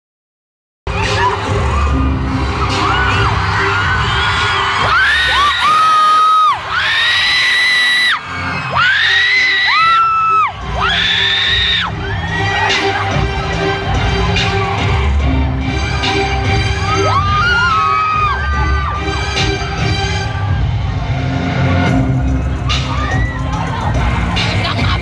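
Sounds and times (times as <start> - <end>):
crowd screaming and cheering: 0.9 - 25.0
loud amplified concert music: 0.9 - 25.0.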